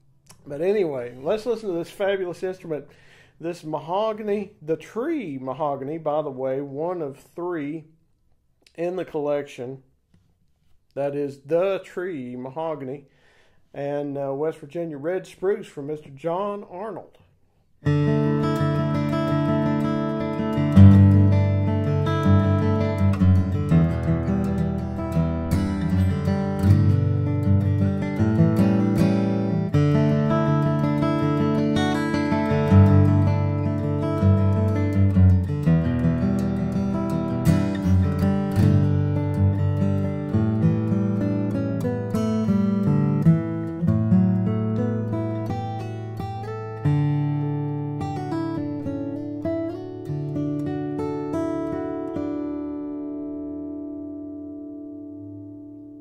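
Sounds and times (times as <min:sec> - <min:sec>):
acoustic guitar picked tune: 0:17.6 - 0:56.0.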